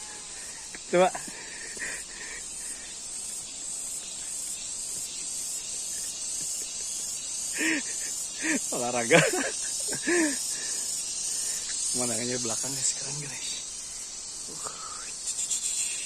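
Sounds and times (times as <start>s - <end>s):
high-pitched insect drone: 0.0s - 16.0s.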